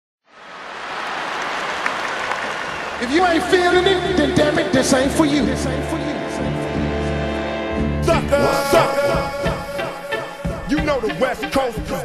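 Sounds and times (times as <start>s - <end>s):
applause-like noise: 0.3s - 4.1s.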